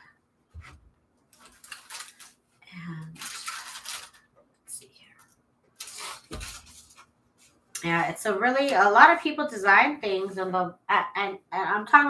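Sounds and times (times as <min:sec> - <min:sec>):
paper rustling and shuffling: 0:00.6 - 0:02.5, 0:03.1 - 0:04.3, 0:05.8 - 0:07.6.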